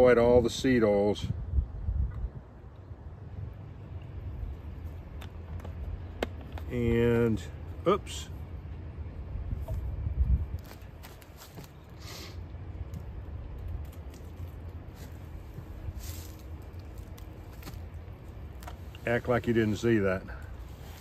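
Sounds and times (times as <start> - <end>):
wind buffeting microphone: 0.0 - 6.1, 9.2 - 11.0.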